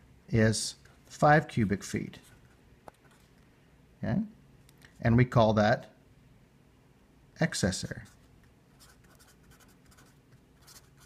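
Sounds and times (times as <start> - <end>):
marker writing on paper: 8.8 - 11.0.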